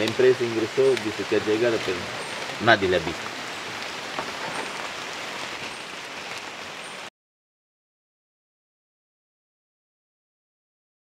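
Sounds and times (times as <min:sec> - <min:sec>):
steady rain falling: 0:00.0 - 0:07.1.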